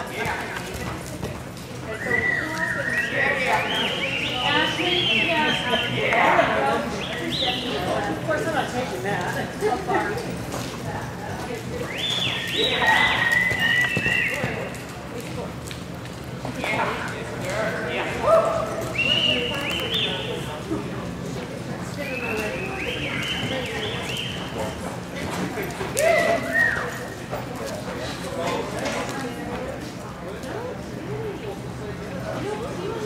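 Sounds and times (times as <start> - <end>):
crowd chatter: 0.0 - 33.0
spectators whistling: 1.9 - 8.0, 11.8 - 14.7, 18.8 - 20.6, 21.9 - 25.0, 26.1 - 27.2.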